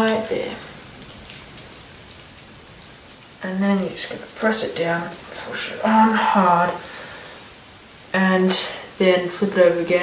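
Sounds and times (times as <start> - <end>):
plastic bricks clicking: 0.9 - 7.1.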